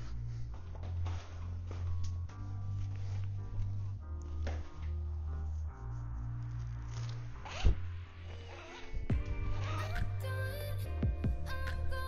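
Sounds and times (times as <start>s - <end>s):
background music with bass: 0.0s - 12.0s.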